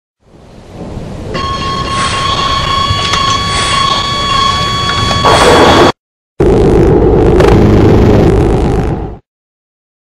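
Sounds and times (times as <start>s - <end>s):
low rumble: 0.3s - 9.2s
high-pitched whine: 1.3s - 9.2s.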